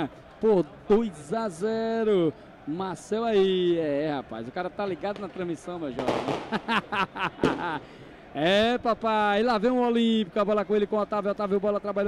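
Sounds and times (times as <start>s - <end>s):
man laughing: 6.4s - 7.9s.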